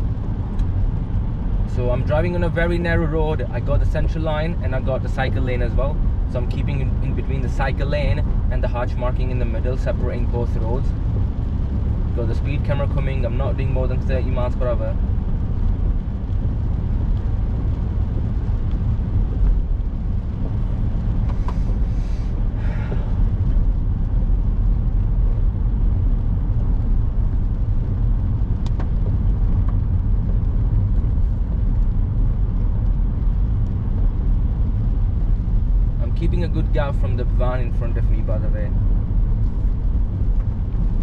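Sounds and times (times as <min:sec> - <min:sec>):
car engine and tyres on wet road: 0:00.0 - 0:41.0.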